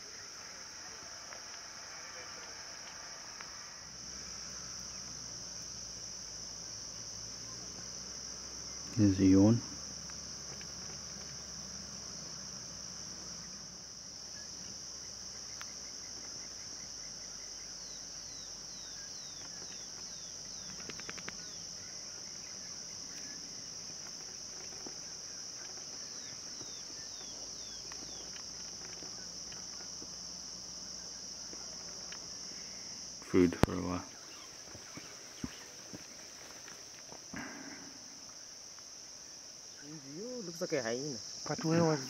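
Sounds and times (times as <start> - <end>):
insects chorus: 0.0 - 42.0
patter of clicks: 10.0 - 11.4, 19.3 - 22.2, 23.0 - 30.2, 31.0 - 32.5.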